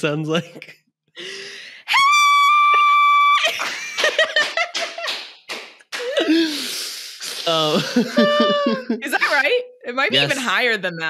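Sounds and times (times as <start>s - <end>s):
breathy intake: 1.2s - 1.9s, 6.0s - 8.9s
woman screaming: 1.9s - 3.6s, 8.1s - 9.0s
woman laughing: 3.4s - 5.1s, 7.6s - 10.5s.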